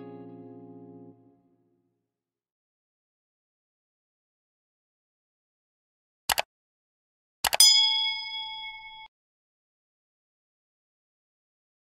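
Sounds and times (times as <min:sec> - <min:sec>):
quick clicks: 0:07.4 - 0:07.6
notification bell ding: 0:07.6 - 0:09.1.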